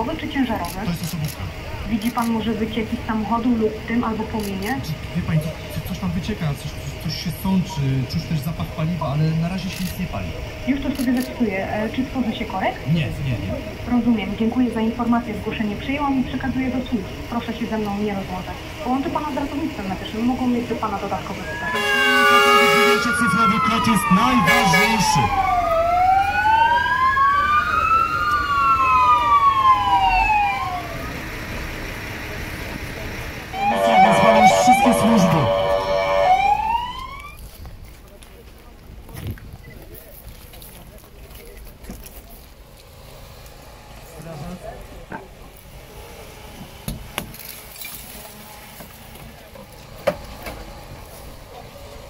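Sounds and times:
fire engine sirens wailing: 0:13.6 - 0:37.5.

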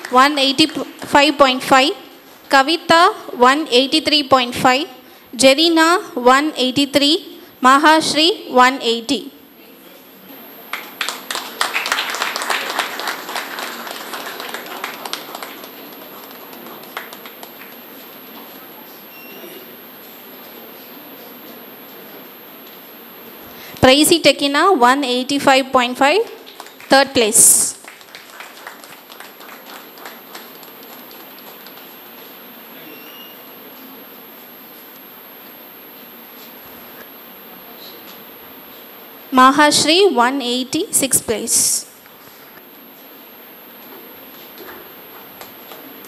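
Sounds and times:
people clapping: 0:00.0 - 0:00.8, 0:10.6 - 0:18.9, 0:26.1 - 0:33.3, 0:44.3 - 0:46.0
room noise hiss: 0:00.0 - 0:46.0
audience applause: 0:10.6 - 0:18.5, 0:26.4 - 0:26.9, 0:27.8 - 0:32.2.

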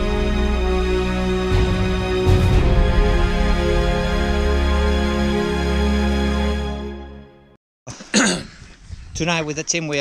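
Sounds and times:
background music: 0:00.0 - 0:07.6
person coughing: 0:07.9 - 0:08.6.

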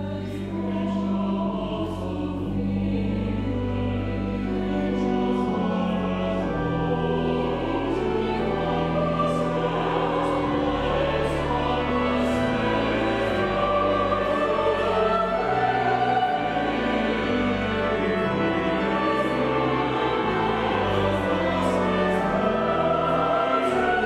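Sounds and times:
church choir singing: 0:00.0 - 0:24.0
sustained low organ notes: 0:00.0 - 0:24.0.

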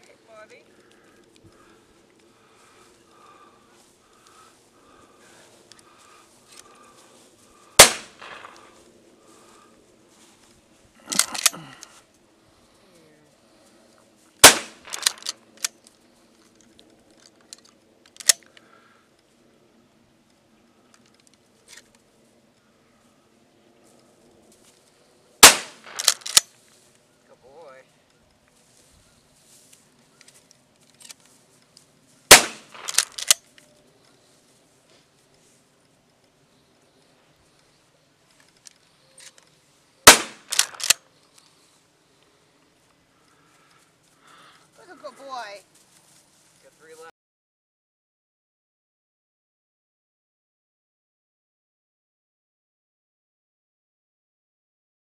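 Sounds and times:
faint sharp cracks: 0:00.8 - 0:09.6, 0:11.0 - 0:12.0, 0:14.4 - 0:16.0, 0:25.4 - 0:26.6, 0:30.2 - 0:33.6, 0:38.3 - 0:41.8
gunshot crack: 0:07.8 - 0:08.7, 0:14.4 - 0:15.1, 0:25.4 - 0:26.1, 0:32.3 - 0:33.0, 0:40.1 - 0:40.8.

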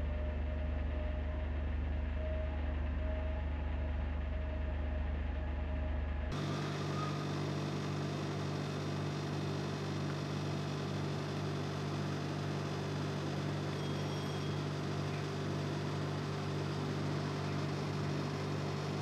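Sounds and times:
higher-pitched steady hum: 0:02.8 - 0:19.0
steady electrical hum: 0:06.3 - 0:19.0.

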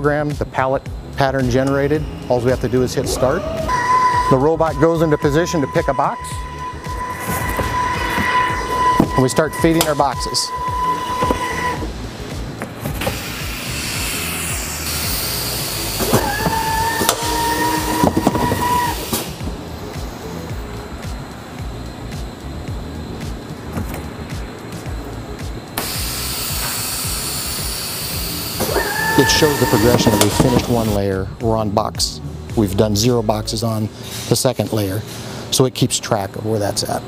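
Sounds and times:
steady machine noise: 0:00.0 - 0:33.5
electric motor whine: 0:03.2 - 0:20.7, 0:25.8 - 0:31.0.

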